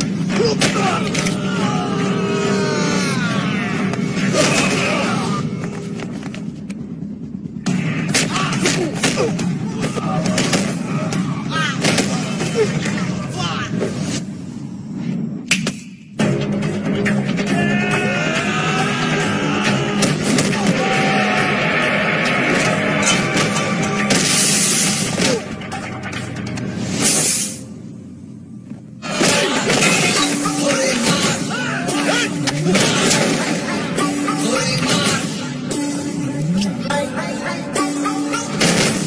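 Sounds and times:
steady low rumble: 0:00.0 - 0:15.5
action film background music: 0:00.0 - 0:39.0.

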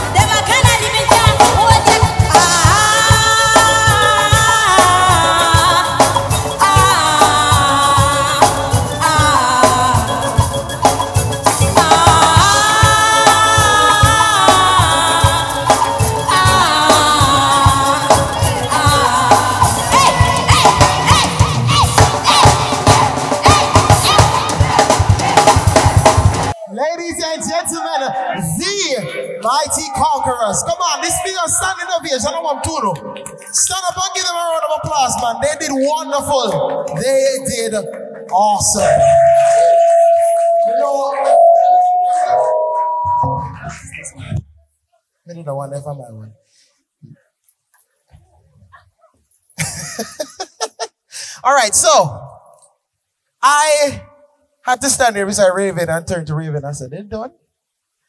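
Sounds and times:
live band with horns and singers: 0:00.0 - 0:26.7, 0:36.4 - 0:44.4
voices shouting and cheering: 0:16.3 - 0:44.4
man laughing into a microphone: 0:49.6 - 0:51.0.

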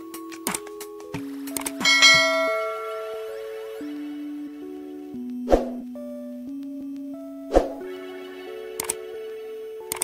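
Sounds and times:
soft background music: 0:00.0 - 0:10.0
bright bell ding: 0:01.8 - 0:03.6
quick clicks: 0:08.8 - 0:09.0.

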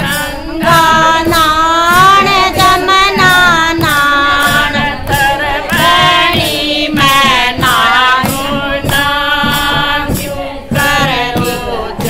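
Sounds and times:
hand claps: 0:00.0 - 0:11.7
women singing in unison: 0:00.0 - 0:12.0.

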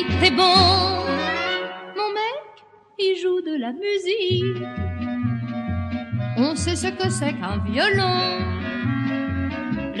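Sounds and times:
orchestral accompaniment: 0:04.5 - 0:10.0.

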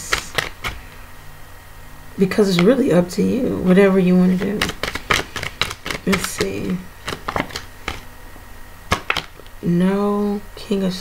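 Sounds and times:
cards clicking and flicking: 0:00.0 - 0:01.0, 0:02.4 - 0:02.8, 0:04.3 - 0:08.1, 0:08.9 - 0:09.5.

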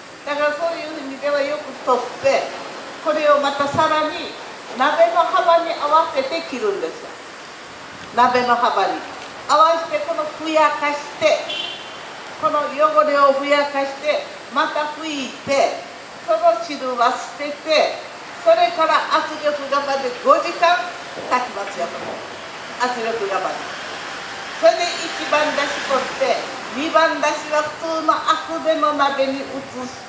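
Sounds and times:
woman talking into a microphone: 0:00.3 - 0:02.5, 0:03.1 - 0:07.2, 0:08.1 - 0:11.5, 0:12.4 - 0:22.2, 0:22.8 - 0:23.6, 0:24.6 - 0:30.0.

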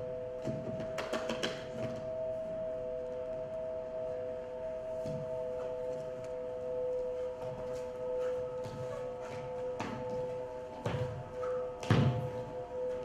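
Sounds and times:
held drone tones: 0:00.0 - 0:13.0.

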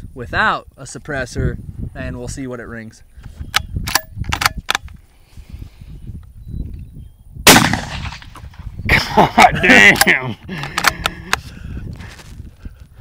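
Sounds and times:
rifle shot with ringing tail: 0:07.4 - 0:08.6.

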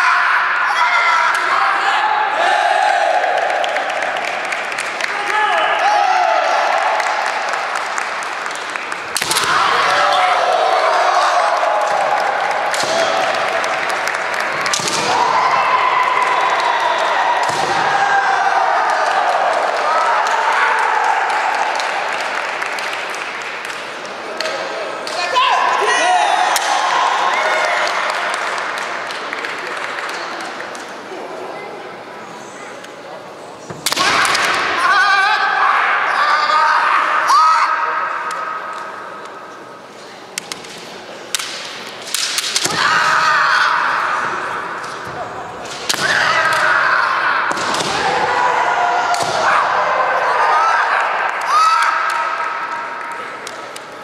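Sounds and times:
fighters shouting cries: 0:00.0 - 0:04.0, 0:09.4 - 0:13.7.

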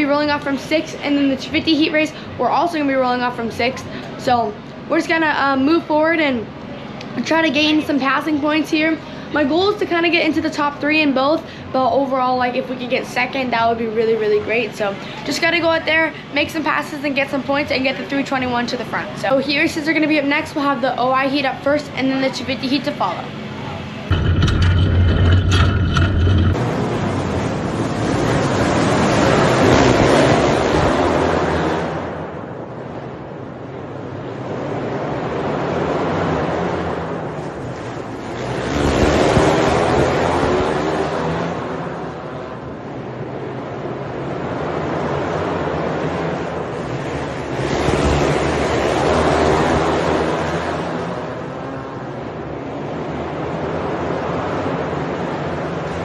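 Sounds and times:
kart engines racing past: 0:23.1 - 0:32.9, 0:34.0 - 0:56.0.

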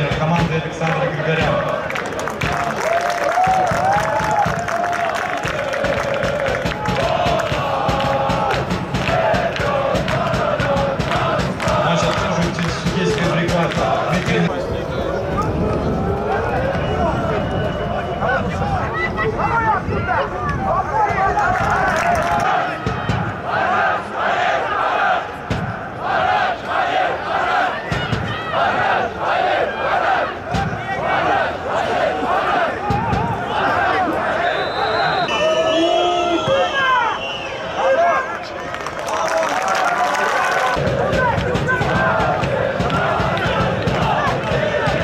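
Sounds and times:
players shouting: 0:00.0 - 0:45.0
stadium rumble: 0:00.0 - 0:45.0.

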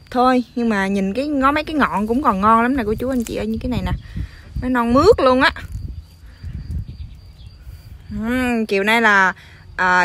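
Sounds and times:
stems rustling in hand: 0:00.0 - 0:09.8.

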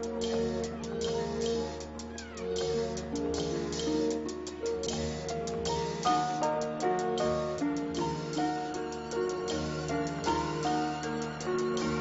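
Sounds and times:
high ticking percussion: 0:00.0 - 0:12.0
sustained background music notes: 0:00.0 - 0:12.0.

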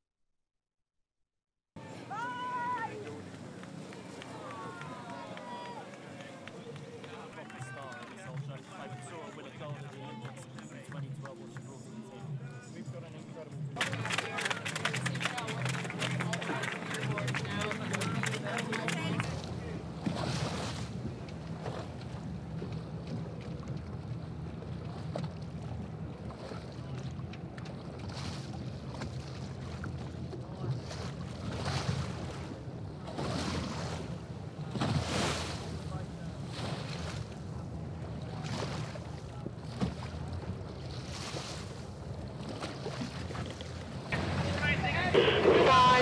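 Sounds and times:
crowd cheering and shouting: 0:01.8 - 0:03.2, 0:03.8 - 0:08.0, 0:44.1 - 0:46.0
wind and water rushing: 0:15.8 - 0:46.0
wave washing past: 0:42.8 - 0:46.0.

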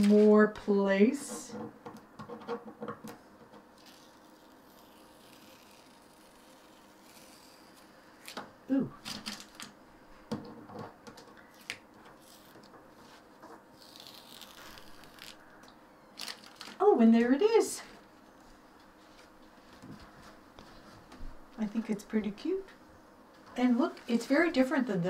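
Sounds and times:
masking tape peeling hiss: 0:03.8 - 0:08.4, 0:13.7 - 0:15.5.

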